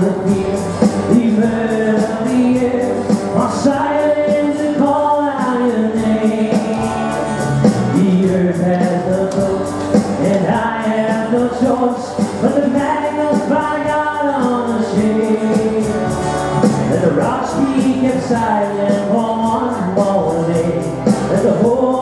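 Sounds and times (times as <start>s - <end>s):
acoustic guitar: 0.0s - 22.0s.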